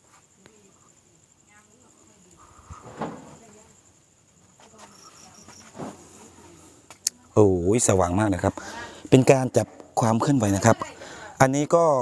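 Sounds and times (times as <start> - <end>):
insect chirping in pulses: 0.0 - 12.0
insects trilling: 0.0 - 12.0.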